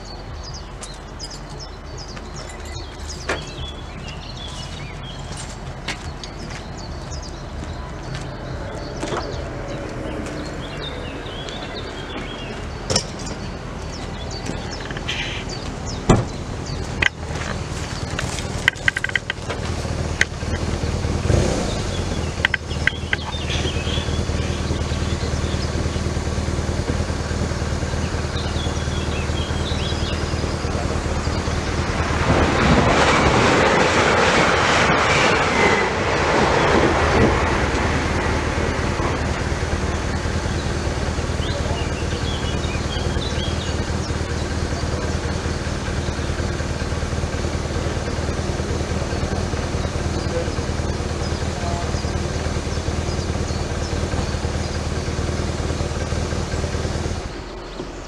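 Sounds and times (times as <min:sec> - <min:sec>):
electric train passing: 0:28.9 - 0:58.0.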